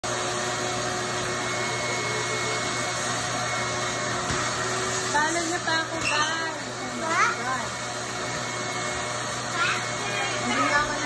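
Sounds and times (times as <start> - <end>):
vacuum cleaner running: 0.0 - 11.0.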